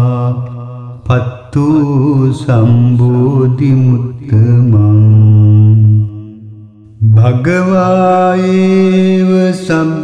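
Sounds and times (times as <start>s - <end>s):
person chanting: 0.0s - 10.0s.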